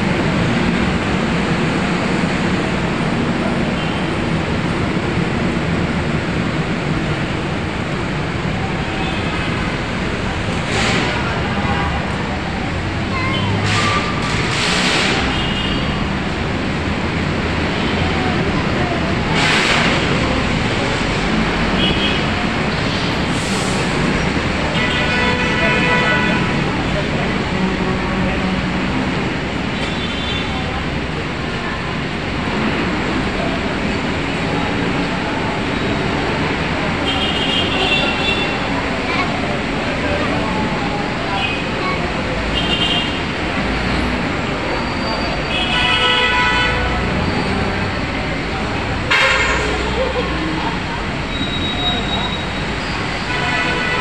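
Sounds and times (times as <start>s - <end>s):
crowd and traffic noise: 0.0s - 54.0s
voices of passers-by: 0.0s - 54.0s.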